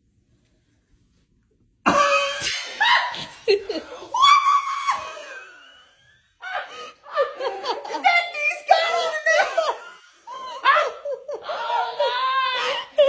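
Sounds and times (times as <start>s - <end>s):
screams and shrieking laughter: 2.1s - 13.0s.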